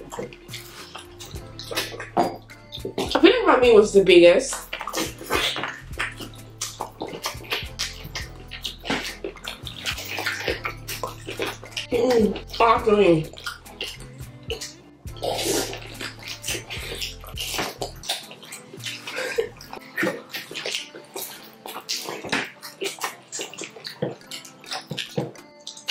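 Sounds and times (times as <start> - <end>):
lip smacks and mouth clicks: 0.0 - 3.2, 4.5 - 12.6, 13.2 - 25.9
wet squishing and chewing: 0.0 - 25.9.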